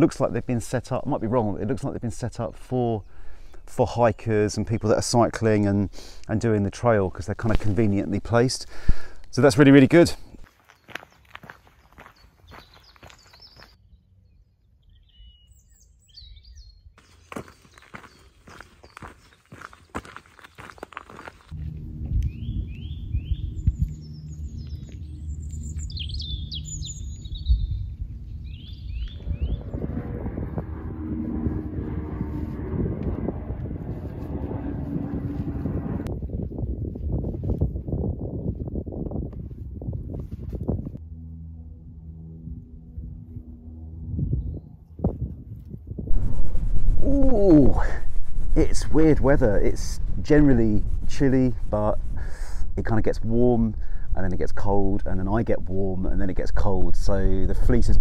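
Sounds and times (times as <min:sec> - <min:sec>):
footsteps on gravel: 0:10.3 - 0:13.8, 0:17.0 - 0:21.8
small birds chirping: 0:10.4 - 0:21.5, 0:22.2 - 0:29.8
steady low rumble: 0:20.9 - 0:58.0.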